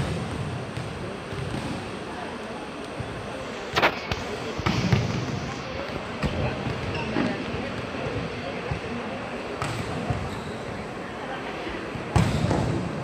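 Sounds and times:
volleyballs slapping and bouncing: 0.0s - 2.0s, 3.8s - 9.0s, 9.6s - 10.3s, 12.1s - 13.0s
murmur of voices: 0.0s - 13.0s.

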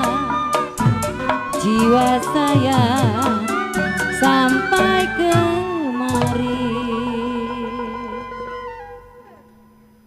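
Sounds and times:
gamelan-style ensemble music: 0.0s - 9.1s
wavering held melody note: 0.0s - 10.0s.

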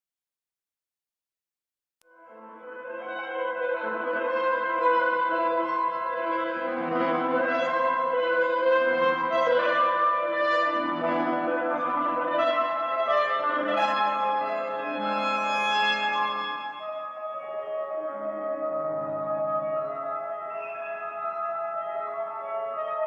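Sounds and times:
alto saxophone sustained notes: 2.4s - 23.0s.

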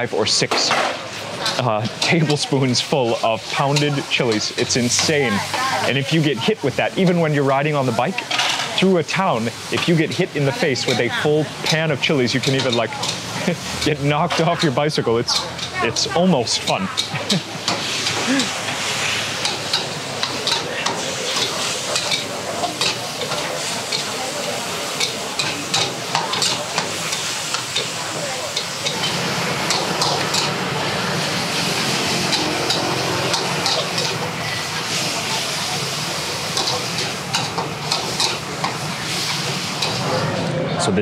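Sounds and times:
food sizzling in a wok: 0.8s - 40.6s.

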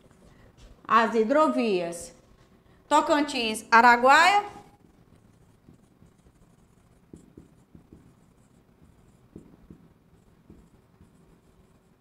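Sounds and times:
marker pen squeaking on whiteboard: 4.6s - 12.0s
pen tapping: 4.8s - 11.9s.

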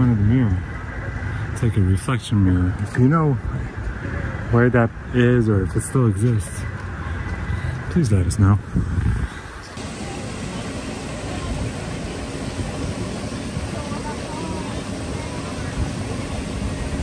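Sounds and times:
waterfall rushing: 9.8s - 17.0s.

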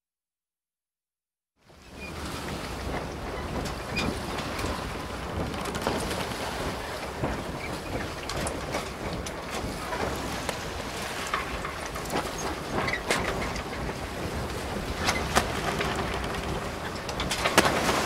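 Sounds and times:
steady rushing noise: 2.3s - 18.0s
small crackles and clicks: 5.4s - 6.3s, 15.3s - 17.7s.

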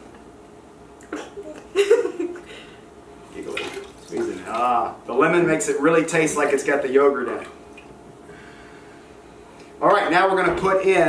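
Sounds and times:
juice trickling and dripping: 3.2s - 8.0s.

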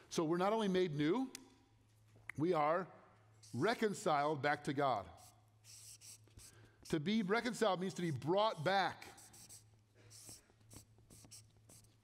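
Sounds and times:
marker scratching on paper: 3.4s - 4.0s, 5.0s - 7.1s, 8.5s - 12.0s.

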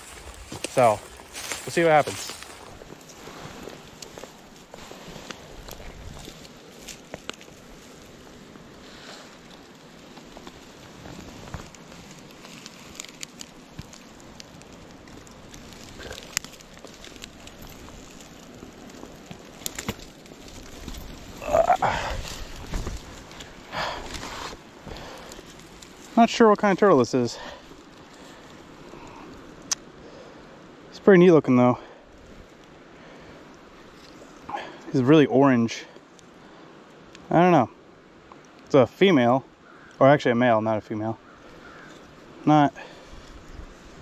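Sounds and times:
hands rustling through grass: 0.0s - 29.9s, 41.3s - 44.0s
grunt-like sound: 21.4s - 22.2s.

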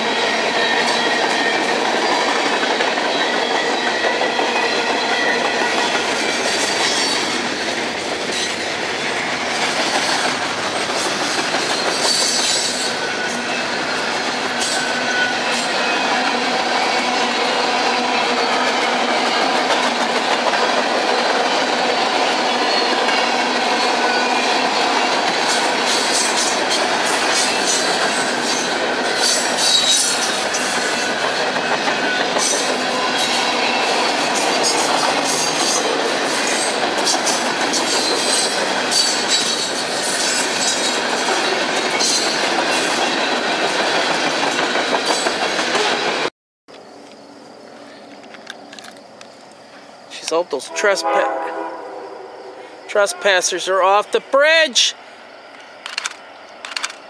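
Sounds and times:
train cars clanking: 0.0s - 46.3s
train wheels clattering over joints: 0.0s - 46.3s, 55.8s - 57.0s
wheel squeal: 11.6s - 17.2s.

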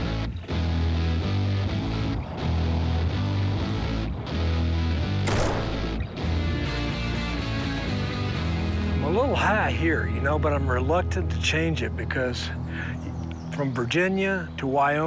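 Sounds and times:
guitar background music: 0.0s - 14.6s
rifle shot: 5.2s - 6.8s.

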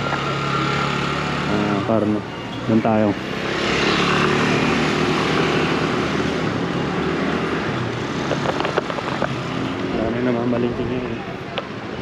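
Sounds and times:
road and wind noise: 0.0s - 12.0s
scooter engines humming: 0.0s - 12.0s.

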